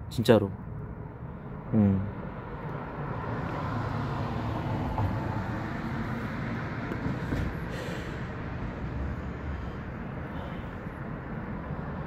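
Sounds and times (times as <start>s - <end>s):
vehicle passing by: 0.9s - 12.0s.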